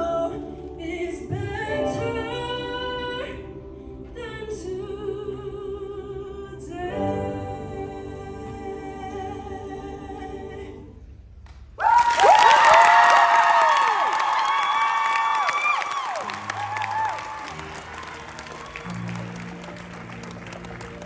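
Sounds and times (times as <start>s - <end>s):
audience applause and cheers: 11.8s - 21.0s.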